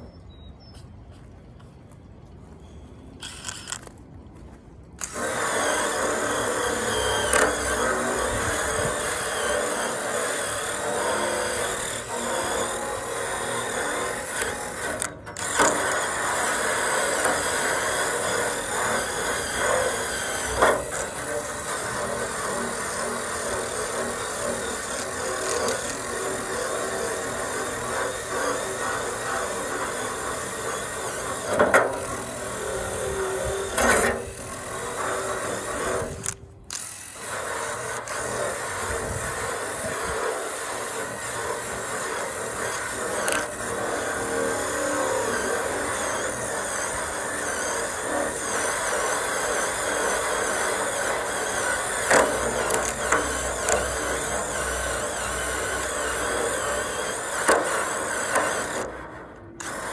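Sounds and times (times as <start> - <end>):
drill grinding paint off metal: 5.0 - 59.9.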